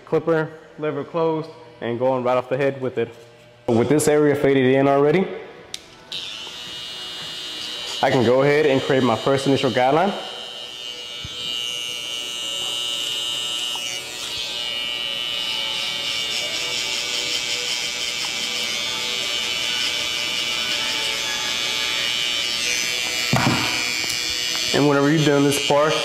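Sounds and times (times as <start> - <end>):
background music: 3.6 - 26.0
hair trimmer buzzing: 5.8 - 26.0.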